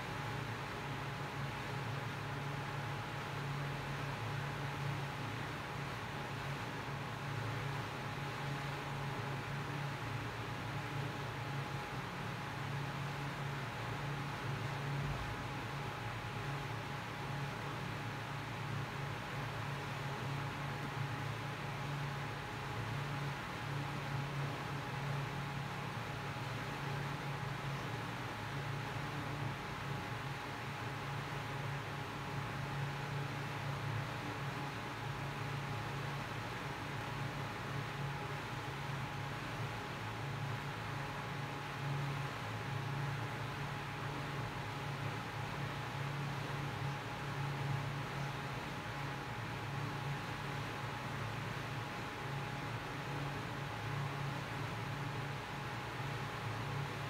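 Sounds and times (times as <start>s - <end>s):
faint steady whine: 0.0s - 57.0s.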